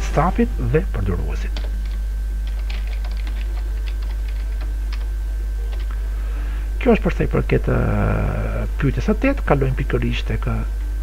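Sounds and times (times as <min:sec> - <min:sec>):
steady low hum: 0:00.0 - 0:11.0
keyboard keys clicking: 0:01.5 - 0:05.1, 0:05.7 - 0:05.9.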